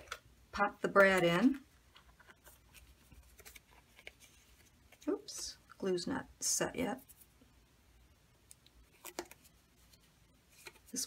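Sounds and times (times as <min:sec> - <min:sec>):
cardstock handling: 0:02.0 - 0:05.1, 0:08.9 - 0:09.5, 0:10.5 - 0:11.0.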